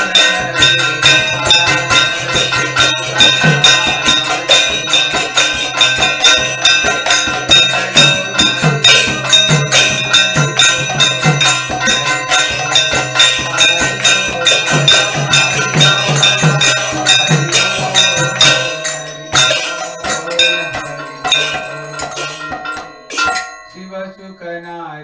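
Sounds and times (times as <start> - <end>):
brass hand cymbals: 0.0 - 23.9
bells ringing: 0.0 - 25.0
two-headed drum rhythm: 0.0 - 25.0.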